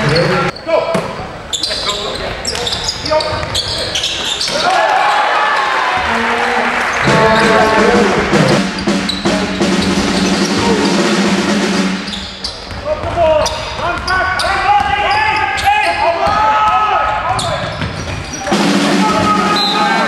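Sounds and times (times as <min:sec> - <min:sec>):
voices in a hall: 0:00.0 - 0:20.0.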